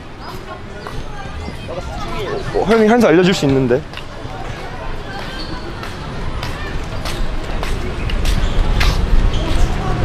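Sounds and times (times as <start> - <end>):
steady low rumble: 0.0 - 4.3
faint distant voices: 0.0 - 10.0.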